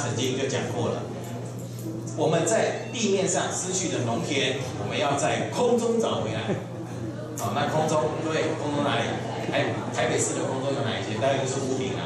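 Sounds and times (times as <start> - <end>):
man speaking over pa system: 2.1 - 6.7, 7.4 - 12.0.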